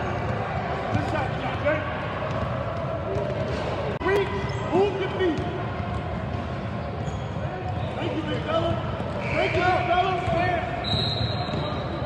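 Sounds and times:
voices of players and spectators: 0:00.0 - 0:12.0.

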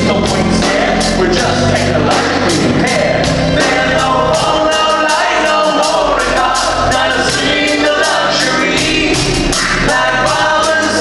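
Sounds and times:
live band playing: 0:00.0 - 0:11.0
man singing: 0:00.0 - 0:11.0.

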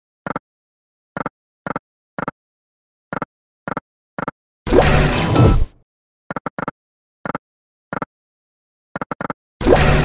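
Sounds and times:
loud ringing game effect: 0:04.8 - 0:05.7.

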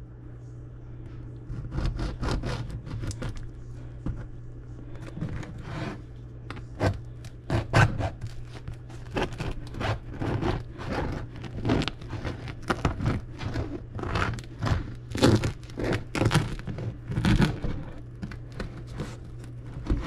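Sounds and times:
low hum: 0:00.0 - 0:20.0
bread crust crackling and tearing: 0:01.4 - 0:20.0
knife sawing through bread crust: 0:01.5 - 0:03.4, 0:05.1 - 0:06.1, 0:06.7 - 0:20.0.

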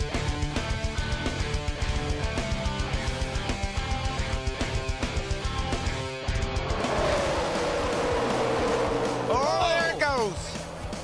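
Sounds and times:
rock music with electric guitar: 0:00.0 - 0:11.0
race car engines rushing: 0:05.8 - 0:11.0.

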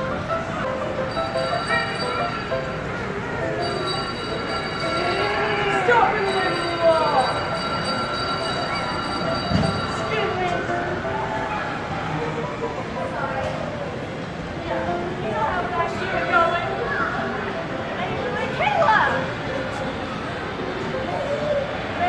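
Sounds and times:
children chattering: 0:00.0 - 0:22.0.

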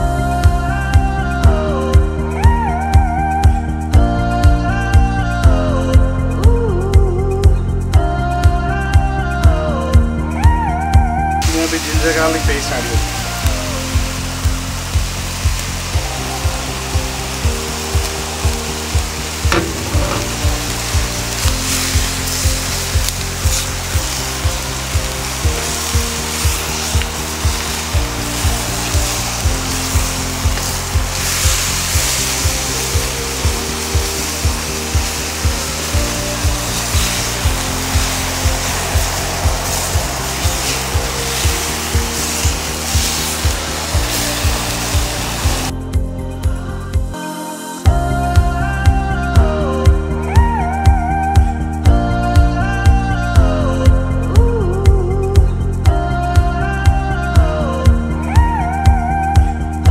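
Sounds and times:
background music with steady beat: 0:00.0 - 0:59.9
meat sizzling in a wok: 0:10.4 - 0:45.8.

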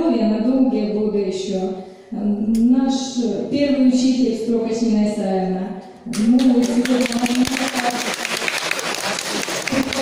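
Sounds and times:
audience applauding: 0:06.4 - 0:10.0.

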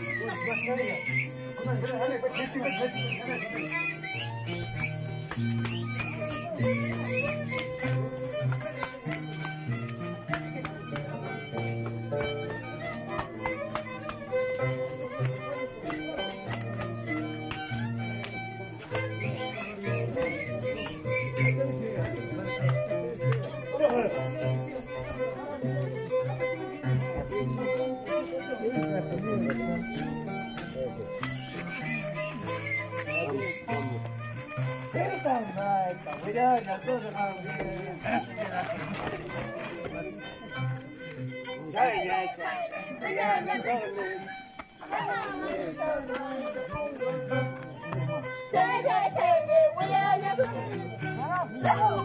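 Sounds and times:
violin melody: 0:00.0 - 0:52.0.

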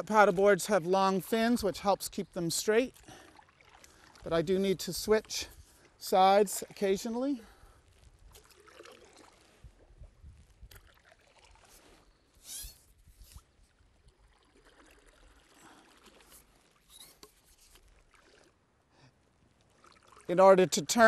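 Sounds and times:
paddle splashing water: 0:00.0 - 0:21.0.

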